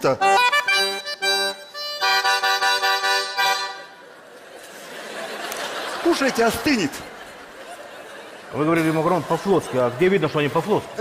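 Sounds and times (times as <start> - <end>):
button accordion chords: 0.0 - 4.0.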